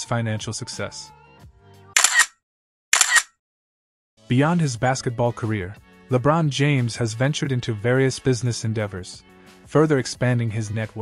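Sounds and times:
background music: 4.2s - 11.0s.

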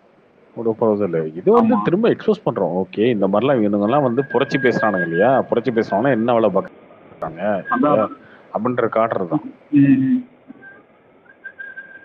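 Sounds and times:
faint high-pitched whistle: 4.0s - 5.4s, 7.5s - 8.2s, 10.6s - 12.0s.

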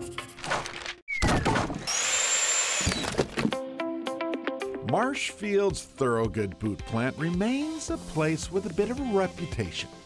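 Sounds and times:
power tool whining: 1.7s - 3.5s.

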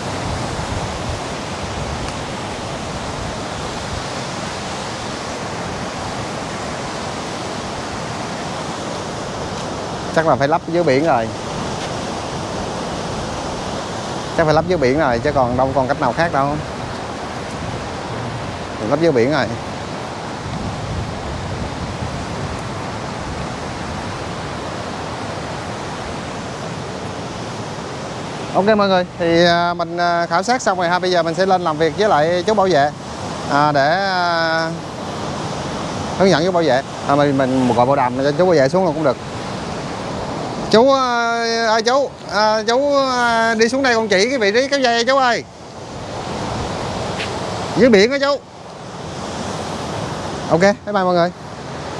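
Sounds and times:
wind on microphone: 0.0s - 41.0s
sea surf breaking: 0.0s - 51.9s.

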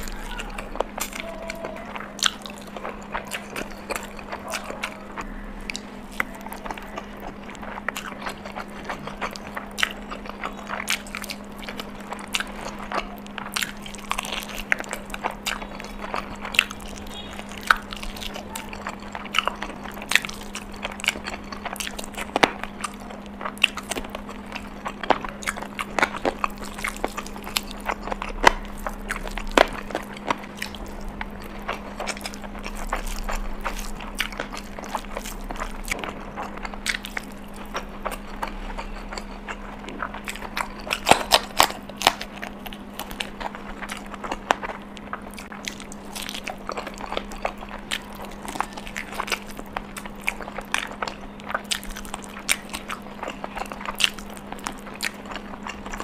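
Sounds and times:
chewing with mouth clicks: 0.0s - 56.0s
low steady hum: 0.0s - 56.0s.

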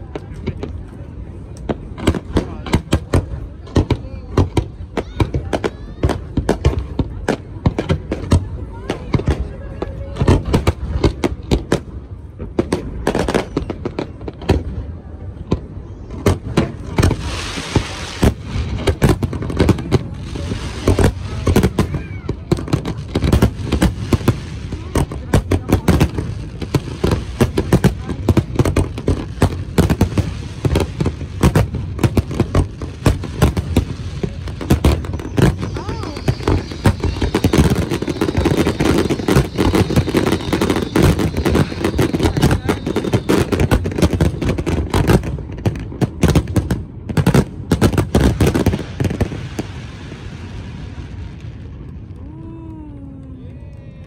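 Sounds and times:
fireworks bursting: 0.0s - 52.2s
faint high hiss: 32.6s - 43.9s.

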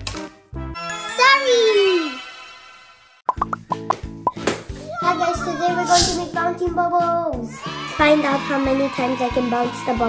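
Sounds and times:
cartoon bubble pops: 3.3s - 4.4s
light music: 3.3s - 10.0s.

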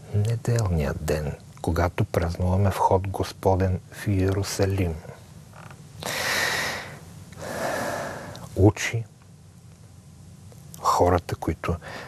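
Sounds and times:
man breathing in loudly: 6.0s - 8.4s.

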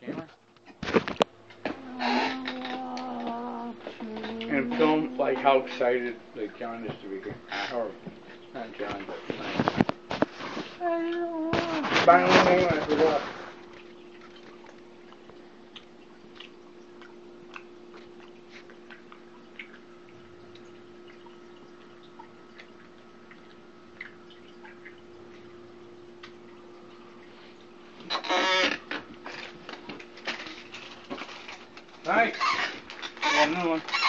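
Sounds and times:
low electrical hum: 0.0s - 34.0s
clicks and rustles of handling: 8.8s - 10.8s.

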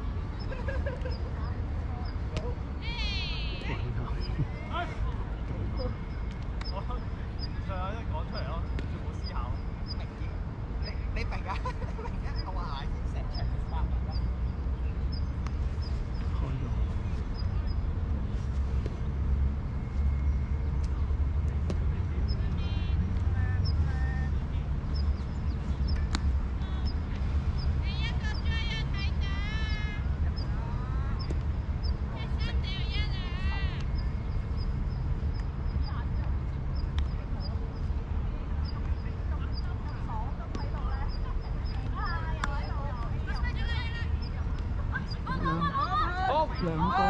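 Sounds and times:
constant low rumble: 0.0s - 47.0s.

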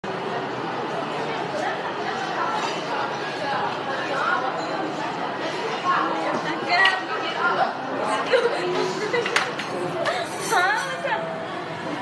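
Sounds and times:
chatter of many voices: 0.0s - 12.0s.

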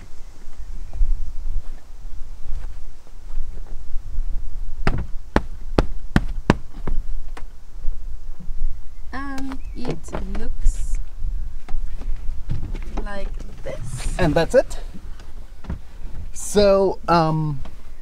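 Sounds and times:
sharp knocks: 4.8s - 7.0s
steady low rumble: 10.9s - 16.0s.

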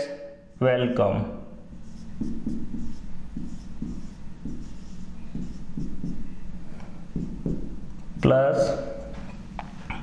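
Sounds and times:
marker writing on whiteboard: 1.6s - 8.1s.

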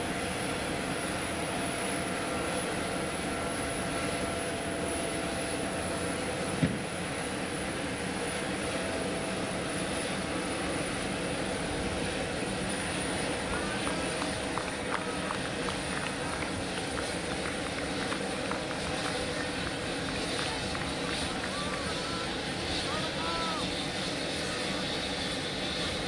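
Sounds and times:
jet engines idling: 0.0s - 26.0s.

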